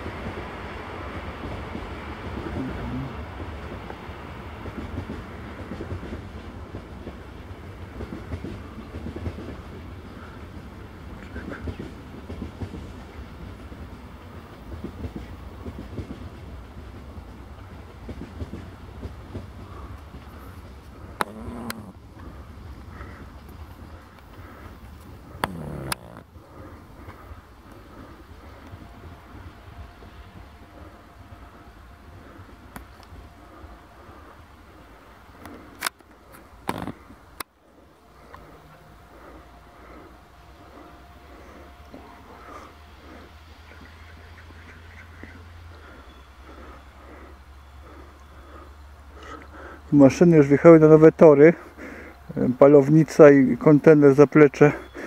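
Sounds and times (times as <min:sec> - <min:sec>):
train wheels rumbling on rails: 0:00.0 - 0:55.0.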